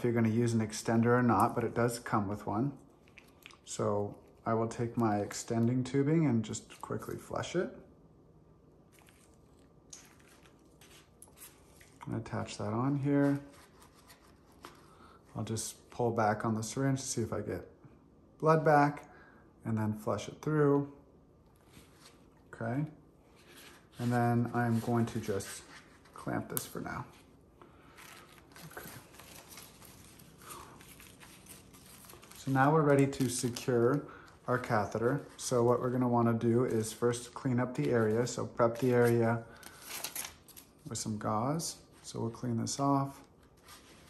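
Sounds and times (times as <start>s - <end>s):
paper and packaging rustling: 9.0s - 15.2s, 23.3s - 41.0s, 41.8s - 44.0s.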